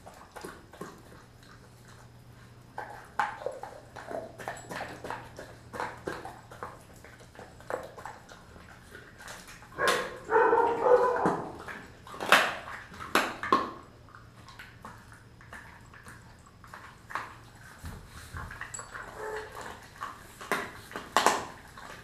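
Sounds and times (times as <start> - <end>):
dog chewing and crunching bone: 0.0 - 22.0.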